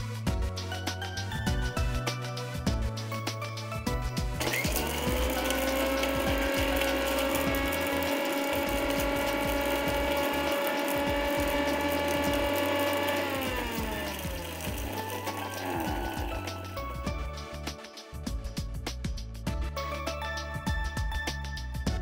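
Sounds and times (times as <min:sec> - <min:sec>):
mixer grinder motor running: 0:04.4 - 0:17.2.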